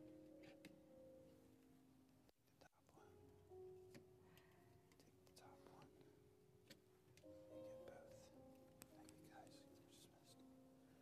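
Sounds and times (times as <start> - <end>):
faint whispered speech: 2.6 - 3.2, 4.3 - 6.2, 7.6 - 10.5.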